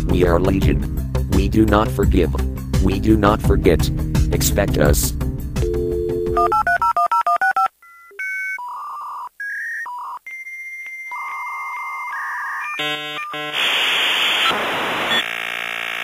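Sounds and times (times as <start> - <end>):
background music: 0.0 - 6.8
telephone keypad dialing tones: 5.6 - 13.3
stepping electronic beeps: 9.4 - 13.6.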